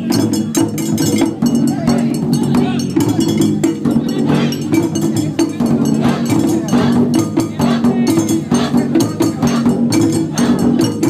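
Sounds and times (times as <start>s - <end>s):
taiko drums playing: 0.0s - 11.0s.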